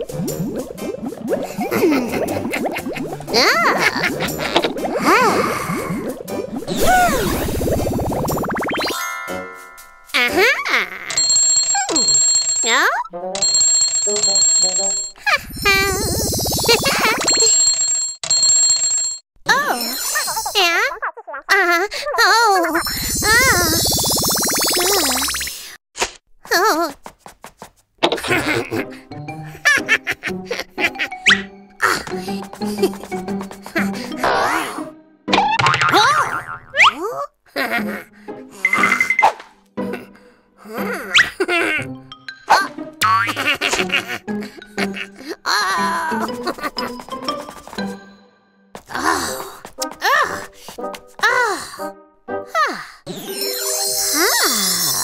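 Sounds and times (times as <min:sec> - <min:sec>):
cartoon downward swoop: 0:06.6 - 0:09.0
cartoon music with bell tones: 0:08.4 - 0:21.2, 0:22.8 - 0:25.6, 0:38.6 - 0:39.3, 0:41.8 - 0:43.3, 0:46.1 - 0:48.7, 0:53.1 - 0:55.0
cartoon fast rattle: 0:15.6 - 0:17.6.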